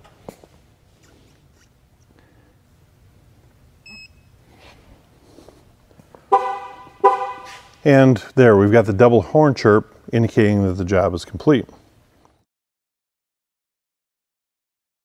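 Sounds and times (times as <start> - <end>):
car horn chirps: 6.3 - 7.7.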